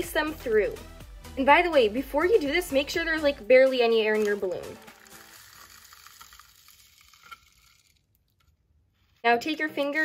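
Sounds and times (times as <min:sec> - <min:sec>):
foam beads pouring rustle: 0:04.1 - 0:08.2.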